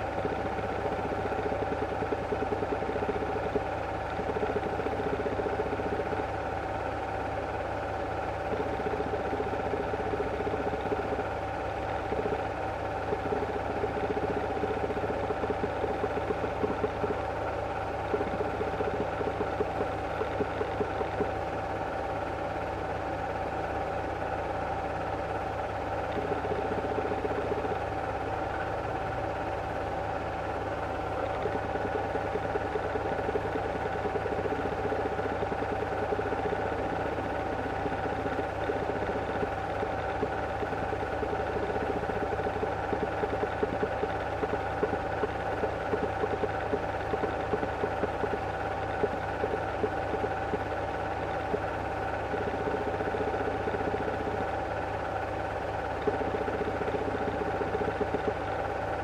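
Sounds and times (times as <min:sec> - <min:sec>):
film projector whirring: 0:00.0 - 0:59.0.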